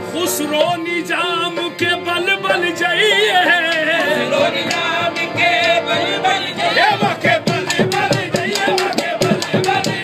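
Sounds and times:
harmonium chords: 0.0s - 10.0s
chorus singing: 1.1s - 10.0s.

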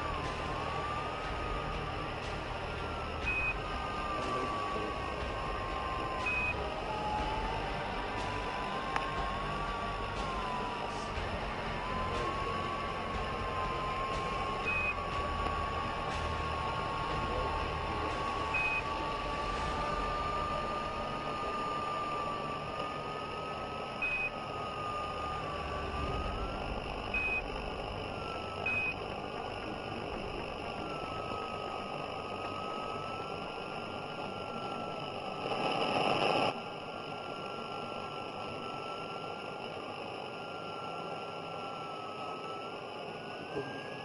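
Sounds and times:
faint wavering whistle: 0.0s - 44.0s
radio static hiss: 0.0s - 44.0s
short high beep tones: 6.2s - 6.6s.

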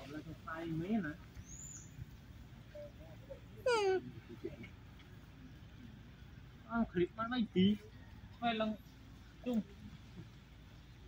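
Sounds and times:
monkey call: 2.7s - 4.3s.

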